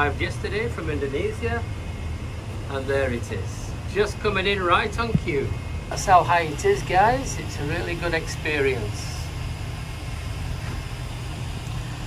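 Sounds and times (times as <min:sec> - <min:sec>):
cable car gondola rumble and hiss: 0:00.0 - 0:12.0.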